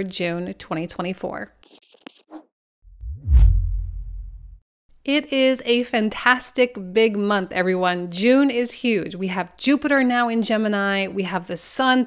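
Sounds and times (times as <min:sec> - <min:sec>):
whoosh swish: 0:02.9 - 0:04.6
deep boom: 0:03.0 - 0:04.6.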